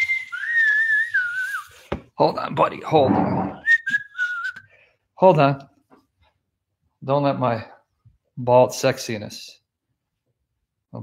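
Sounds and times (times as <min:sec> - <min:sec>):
person whistling: 0:00.0 - 0:01.9, 0:03.5 - 0:04.8.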